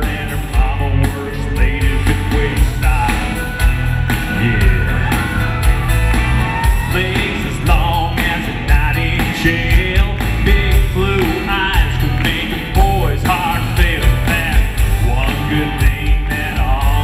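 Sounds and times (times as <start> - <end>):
man singing into a microphone: 0.0 - 5.3, 6.8 - 17.0
acoustic guitar: 0.0 - 17.0
backing track with steady beat: 0.0 - 17.0.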